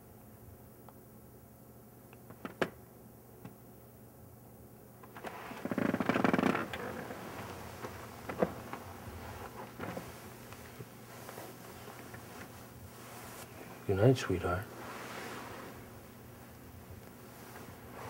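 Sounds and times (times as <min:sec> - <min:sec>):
bed creaking: 0:05.0 - 0:14.0, 0:14.7 - 0:18.0
bedclothes rustling: 0:05.0 - 0:18.0.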